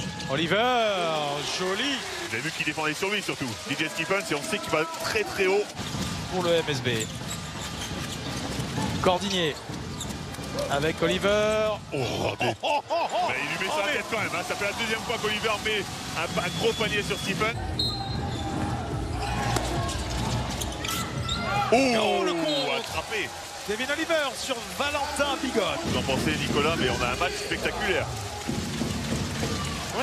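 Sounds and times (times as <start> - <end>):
arena crowd noise: 0.0 - 30.0
basketball bouncing on court: 7.0 - 11.6, 28.3 - 30.0
basketball bouncing on hardwood: 28.4 - 29.9.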